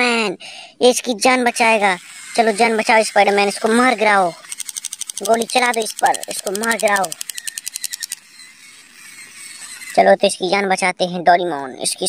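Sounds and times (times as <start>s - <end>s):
rapid ratchet-like clicking: 1.4s - 10.1s.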